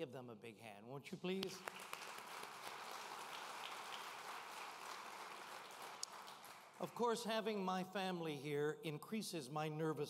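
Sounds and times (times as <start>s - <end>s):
audience applauding: 1.4s - 7.2s.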